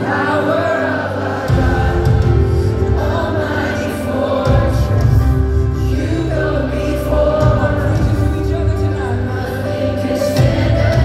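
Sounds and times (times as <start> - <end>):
band holding sustained chords: 0.0 - 11.0
crowd singing together: 0.0 - 11.0.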